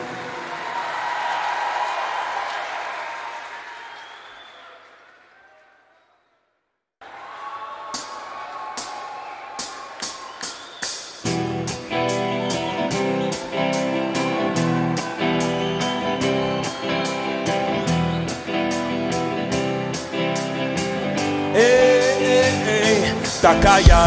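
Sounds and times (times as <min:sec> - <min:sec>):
arena crowd noise: 0:00.0 - 0:24.0
strummed guitar chords: 0:11.2 - 0:24.0.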